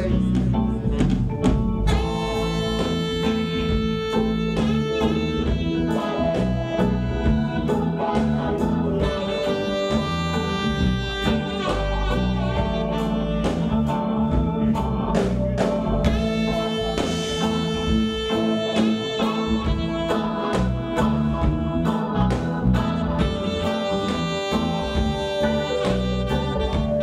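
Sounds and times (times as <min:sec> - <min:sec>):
electric guitar lead: 0:00.0 - 0:27.0
rock blues band playing: 0:00.0 - 0:27.0.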